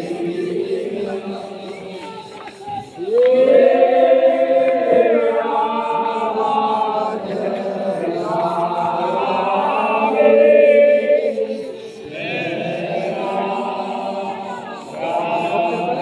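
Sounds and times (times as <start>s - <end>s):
men chanting together: 0.0s - 16.0s.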